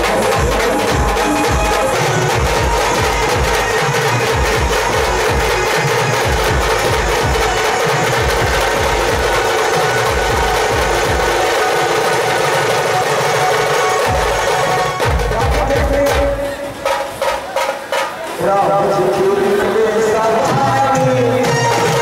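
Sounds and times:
rapid drum beats: 0.0 - 22.0.

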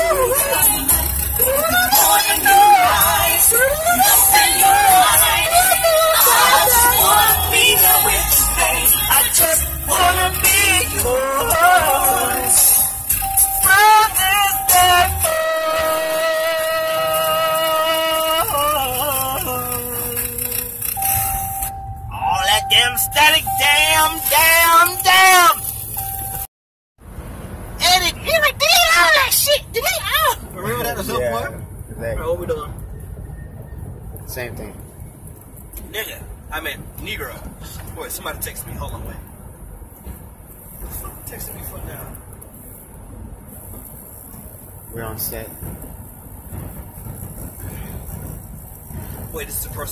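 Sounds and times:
man singing: 0.0 - 12.9, 13.6 - 20.7
road and engine rumble in vehicle cabin: 0.0 - 49.9.

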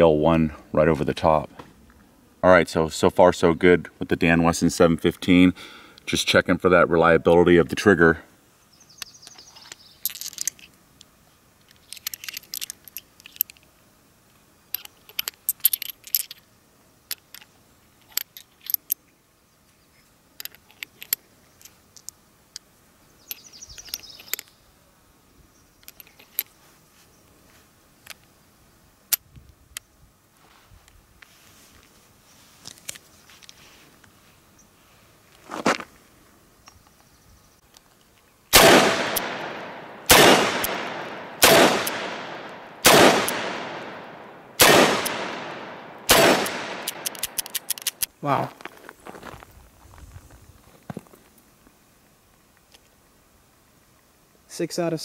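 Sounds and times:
cartridges clicking into cylinder: 9.0 - 10.8, 11.6 - 13.7, 20.4 - 24.6, 38.5 - 48.1
revolver shots echoing: 38.6 - 47.1.

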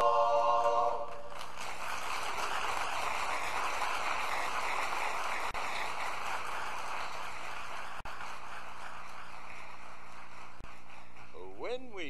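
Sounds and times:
audience applauding: 0.7 - 12.0.

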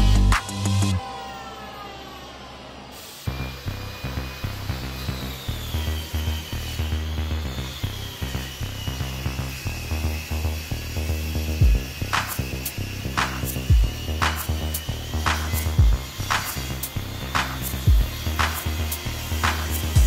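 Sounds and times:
background music with steady beat: 0.0 - 20.0
electric hand planer winding down: 0.0 - 20.0.

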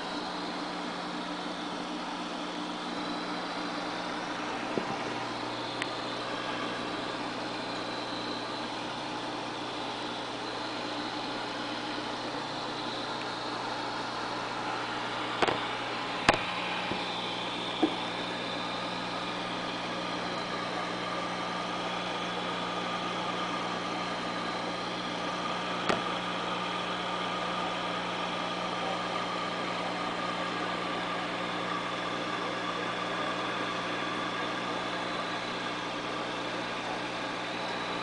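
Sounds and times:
electrical hum with hiss: 0.0 - 38.0.

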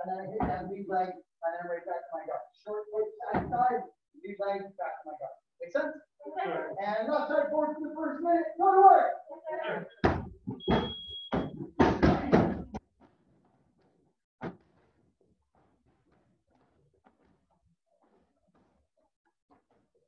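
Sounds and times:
dull knocks and thuds: 3.3 - 3.7, 10.0 - 12.8.

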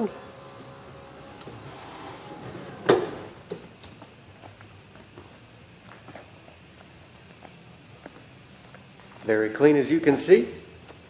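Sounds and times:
seat motor running faintly: 0.0 - 8.3.

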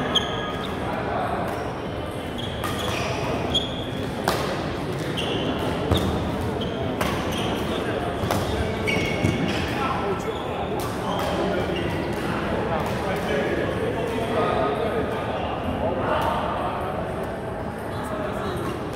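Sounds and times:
shoe squeaks on court floor: 0.0 - 0.9, 2.3 - 4.0, 5.0 - 12.1
voices in hall: 0.0 - 18.9.

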